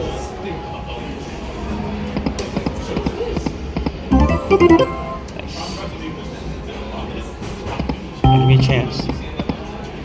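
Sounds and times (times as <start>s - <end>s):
slot machine electronic blips: 4.1s - 5.5s, 8.2s - 9.2s.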